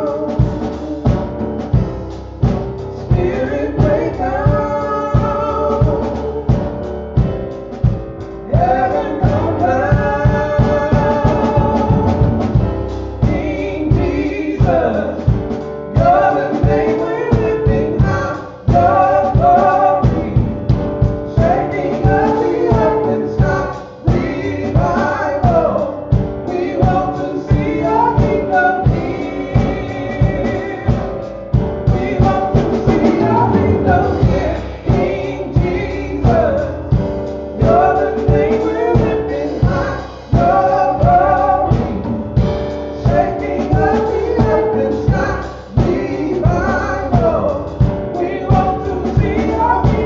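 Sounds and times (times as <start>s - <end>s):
keyboard accompaniment: 0.0s - 50.0s
steady drum beat: 0.0s - 50.0s.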